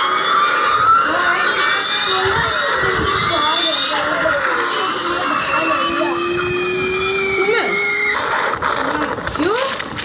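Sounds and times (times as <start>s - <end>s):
rising whistle-like tone: 0.0s - 9.1s
tone sliding down: 0.0s - 9.8s.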